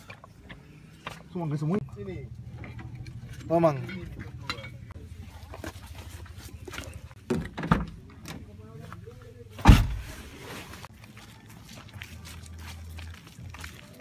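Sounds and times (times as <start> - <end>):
loud thump: 9.6 - 10.2.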